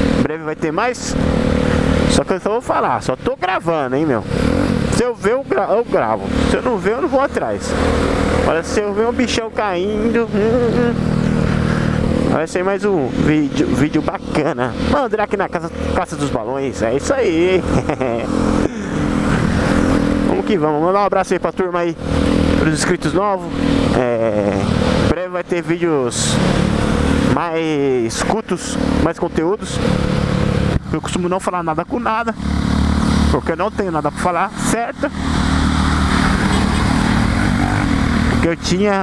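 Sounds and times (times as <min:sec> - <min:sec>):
motorcycle engine cruising: 0:00.0 - 0:39.0
tyres on wet road: 0:00.0 - 0:39.0.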